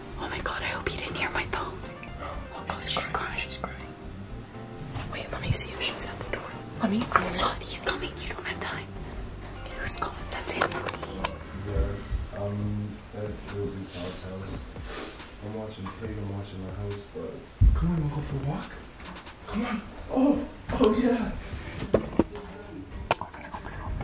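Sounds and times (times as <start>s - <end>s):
quiet background music: 0.0s - 24.0s
people whispering: 0.2s - 3.9s, 5.0s - 9.0s, 9.6s - 12.6s, 13.3s - 17.2s, 22.2s - 24.0s.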